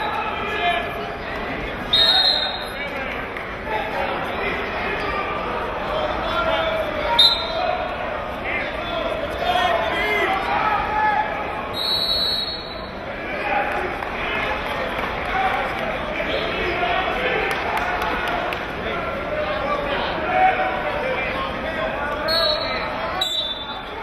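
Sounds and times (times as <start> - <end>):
crowd chatter echoing: 0.0 - 24.0
referee's whistle: 1.9 - 2.8, 7.2 - 7.6, 11.7 - 13.0, 22.2 - 23.9.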